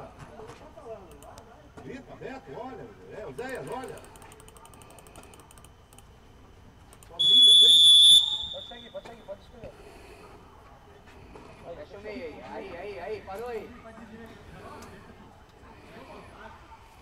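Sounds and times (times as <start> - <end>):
referee's whistle blast: 7.2 - 9.0.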